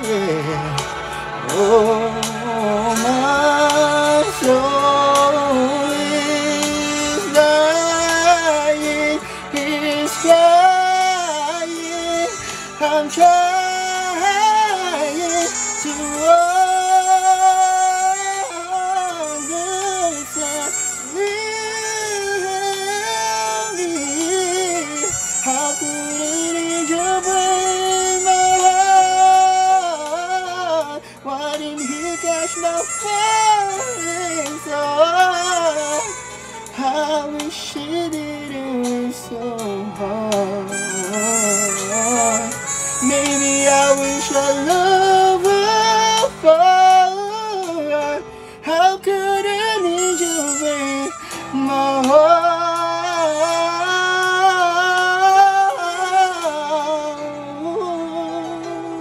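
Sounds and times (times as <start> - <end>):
man singing a slow ballad: 0.0 - 59.0.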